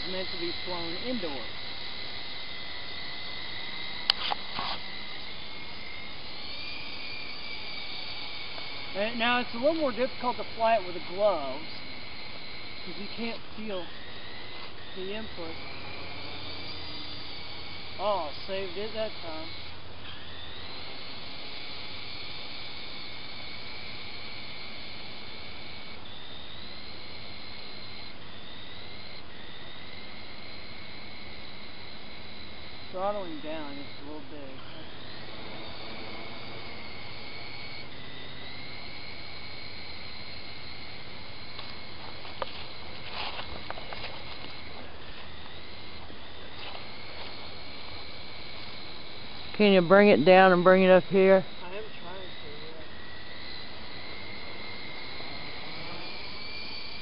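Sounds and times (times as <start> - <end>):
toy helicopter whining: 0.0 - 57.0
sharp click: 4.0 - 4.8.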